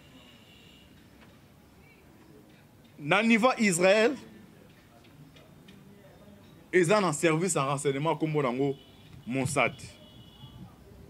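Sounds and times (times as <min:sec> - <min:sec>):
man speaking: 0:03.0 - 0:04.3, 0:06.7 - 0:10.0.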